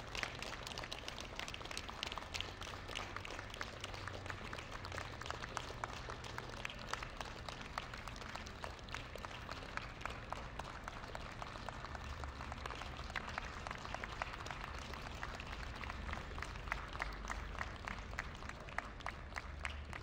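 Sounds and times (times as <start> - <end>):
crowd applauding: 0.0 - 20.0.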